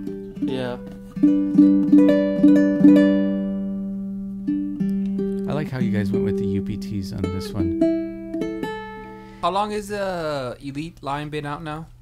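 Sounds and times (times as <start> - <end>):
ukulele plucked fingerstyle: 0.0 - 9.2.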